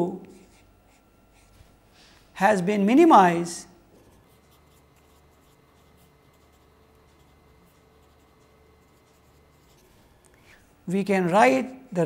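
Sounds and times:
marker writing on paper: 0:00.3 - 0:01.6, 0:04.0 - 0:10.0.

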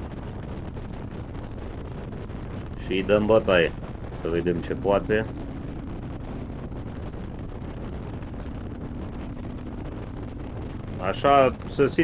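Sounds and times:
motorcycle engine at speed: 0:00.0 - 0:12.0
wind rush on microphone: 0:00.0 - 0:12.0.

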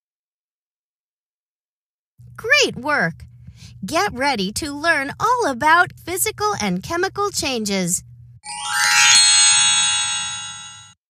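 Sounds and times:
bright electronic chime: 0:08.4 - 0:11.0.

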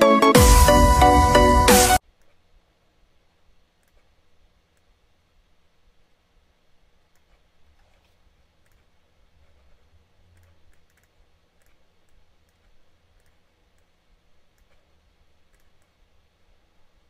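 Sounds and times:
faint low hum: 0:00.6 - 0:17.0
laptop clicking: 0:10.3 - 0:16.0.

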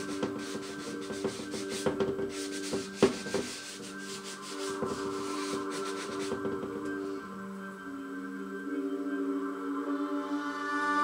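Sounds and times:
hand rubbing painted wood: 0:00.0 - 0:07.1
soft sustained music tones: 0:00.0 - 0:11.0.

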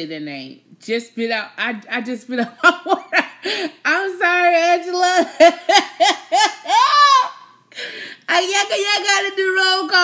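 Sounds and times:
woman laughing hard: 0:02.6 - 0:03.8, 0:05.2 - 0:08.0.

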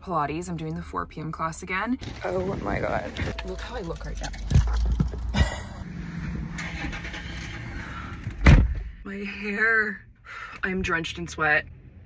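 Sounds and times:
car engine idling: 0:02.0 - 0:11.2.

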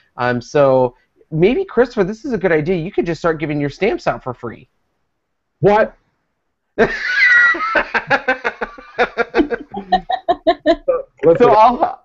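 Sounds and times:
man laughing hard: 0:06.8 - 0:11.7.

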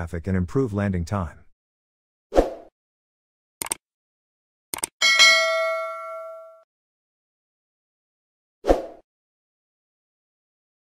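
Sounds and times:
bright bell ding: 0:05.0 - 0:06.6.

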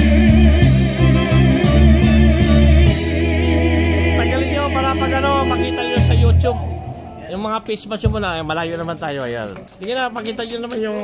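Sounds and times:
person singing through loudspeaker: 0:00.0 - 0:07.0
music backing track with bass: 0:00.0 - 0:07.4.

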